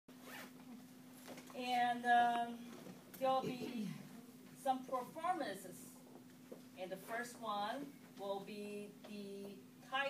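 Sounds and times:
faint steady hum: 0.1s - 10.0s.

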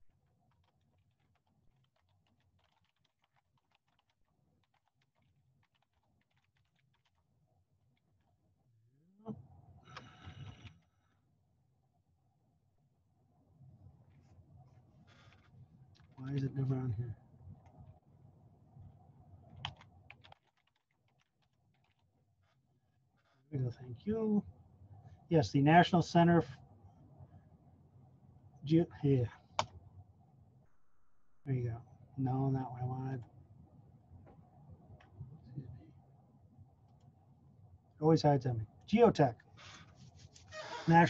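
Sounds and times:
computer keyboard typing: 0.4s - 7.2s, 19.5s - 22.1s.

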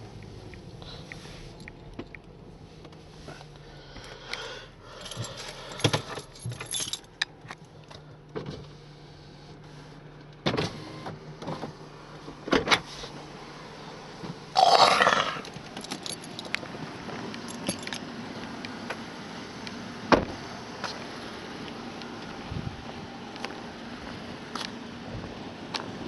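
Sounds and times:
clicks and rattles in car: 0.0s - 8.7s, 10.2s - 12.9s, 15.4s - 18.1s
car engine and road hum: 0.0s - 26.0s.

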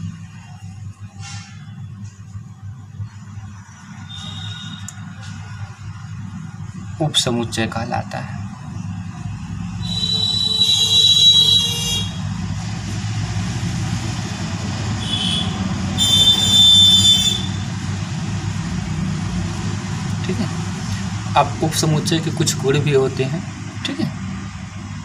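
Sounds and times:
high-pitched horn blasts: 4.1s - 5.0s, 9.8s - 12.3s, 15.0s - 17.7s.

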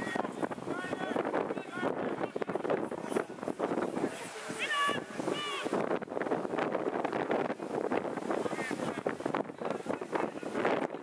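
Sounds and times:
wind on microphone: 0.0s - 11.0s
people shouting: 4.5s - 5.8s.

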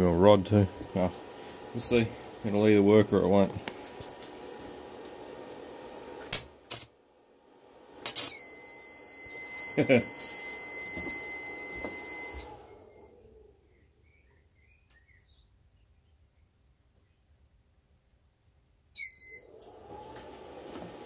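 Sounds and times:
cooling fan whir: 0.0s - 13.6s
high-pitched alarm tone: 8.3s - 12.5s
short beep: 8.3s - 12.5s
faint bird chirps: 12.9s - 17.3s.

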